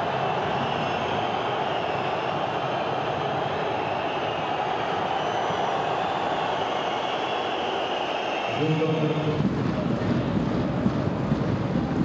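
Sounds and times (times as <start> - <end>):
stadium crowd din: 0.0 - 12.0.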